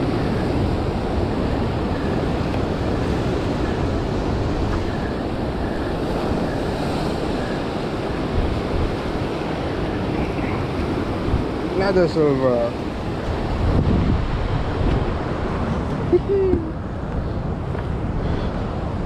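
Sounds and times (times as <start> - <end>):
surf breaking on rocks: 0.0 - 15.7
wind buffeting microphone: 0.0 - 19.0.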